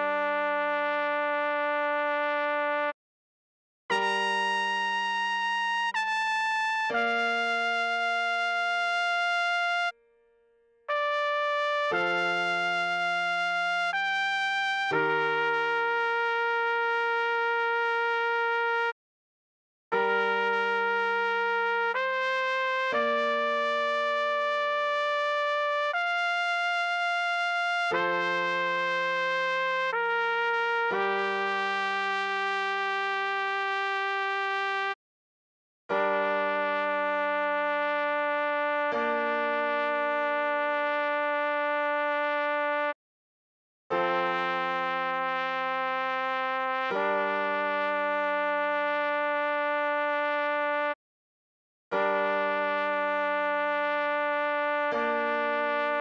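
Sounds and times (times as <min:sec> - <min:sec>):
trumpet playing slow melody: 0:00.0 - 0:03.0, 0:03.9 - 0:10.0, 0:10.9 - 0:18.9, 0:20.0 - 0:35.0, 0:36.0 - 0:43.0, 0:44.0 - 0:51.0, 0:52.0 - 0:56.0.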